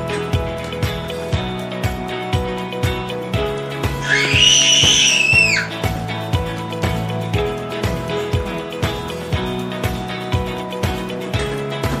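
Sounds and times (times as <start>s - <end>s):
background music with steady beat: 0.0s - 12.0s
toddler shrieking: 4.0s - 5.8s.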